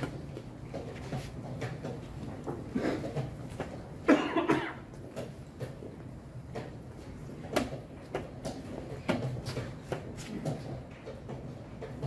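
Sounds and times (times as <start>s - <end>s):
person coughing: 4.0s - 4.9s.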